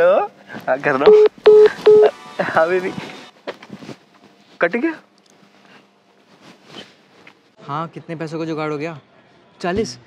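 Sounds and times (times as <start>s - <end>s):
phone call tone beeps: 1.1s - 2.1s.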